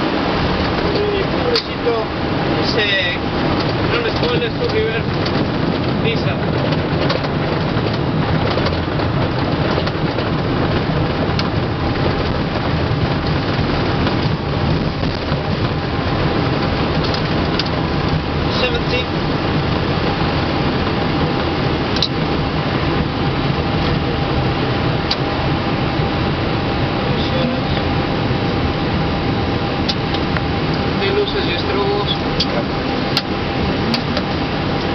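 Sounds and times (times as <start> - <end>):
rumble of engines and airflow: 0.0 - 34.9
thin steady whine: 11.0 - 34.9.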